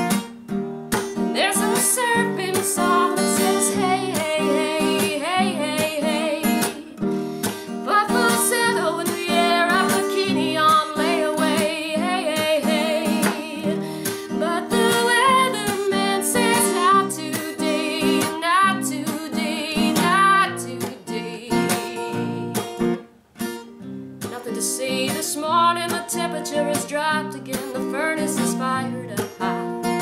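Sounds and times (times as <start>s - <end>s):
acoustic guitar strumming: 0.0s - 30.0s
woman singing: 1.2s - 22.8s, 24.2s - 30.0s.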